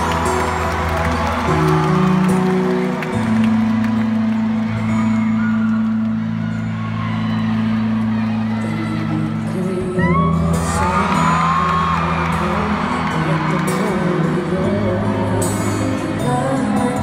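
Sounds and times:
audience cheering and shouting: 0.0s - 17.0s
live band sustained chords: 0.0s - 17.0s.

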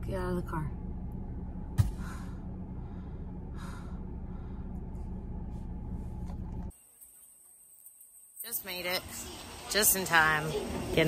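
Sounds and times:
car engine humming: 0.0s - 6.8s.

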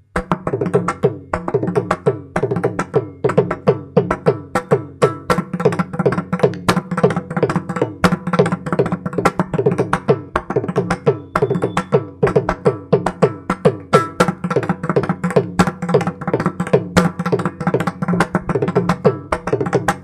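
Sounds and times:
hand drum fast strokes: 0.2s - 20.0s.

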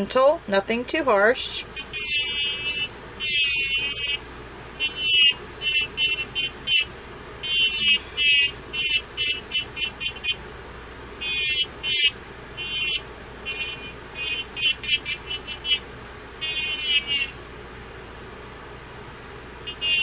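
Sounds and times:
electric nail file grinding whine: 0.0s - 20.0s.

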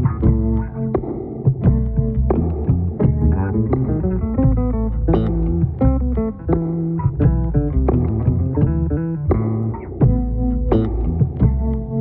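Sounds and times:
bass guitar instrumental music: 0.0s - 12.0s.

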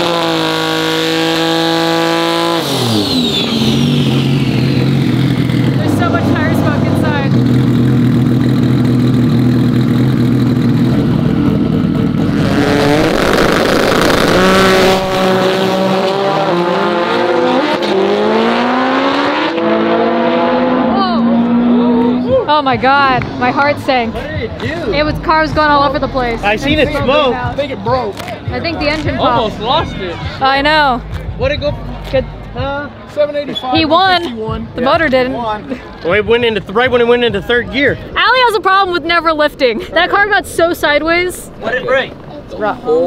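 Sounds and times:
drag car engine revving: 0.0s - 22.2s.

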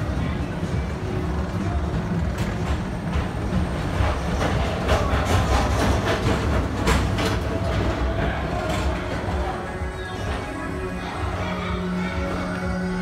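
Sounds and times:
wheels clacking: 0.0s - 11.0s
train rumbling on elevated track: 0.0s - 13.0s.

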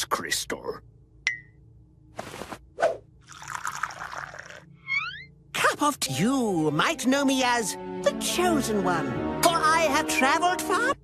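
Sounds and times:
tea pouring into a cup: 3.3s - 4.6s.

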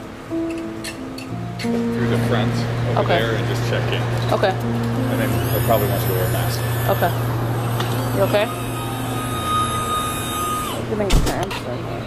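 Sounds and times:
low vehicle hum: 1.4s - 11.1s
high electronic tone: 2.0s - 11.0s.

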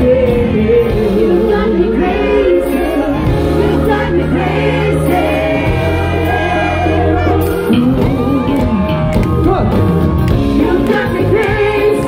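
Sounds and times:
man singing: 0.0s - 4.1s
live pop band: 0.0s - 12.0s.

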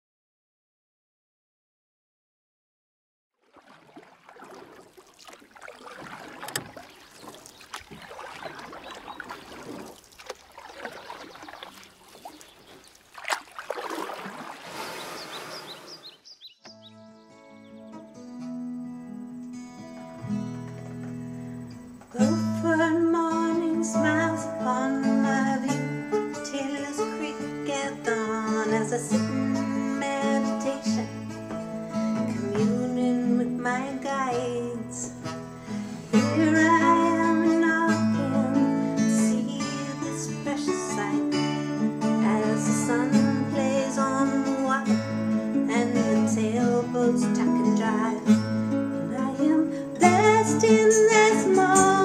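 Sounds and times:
water-like noise: 3.4s - 16.2s
fingerpicked acoustic guitar: 16.7s - 52.0s.

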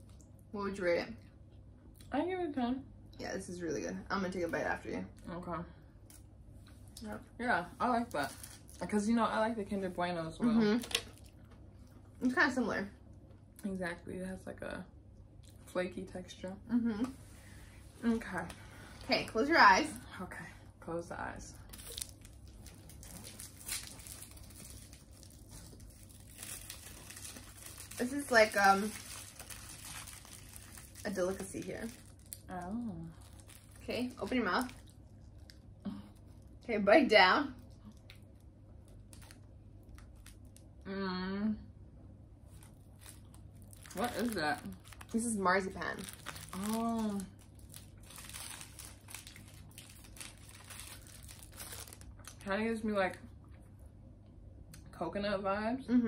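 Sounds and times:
wrapper crinkling and tearing: 7.9s - 8.9s, 10.8s - 11.4s, 21.6s - 35.6s, 38.9s - 40.7s, 42.5s - 52.5s.

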